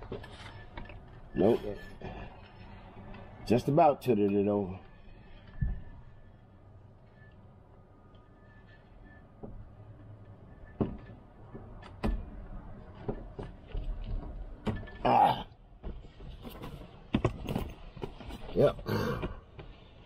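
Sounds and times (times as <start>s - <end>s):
knocks and bumps of wheelchair parts: 10.3s - 20.0s
man grunting: 15.1s - 15.5s, 18.8s - 19.3s.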